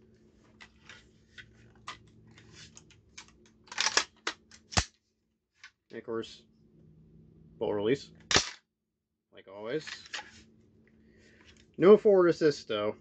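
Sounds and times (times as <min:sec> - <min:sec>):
rifle being handled: 0:00.6 - 0:04.9.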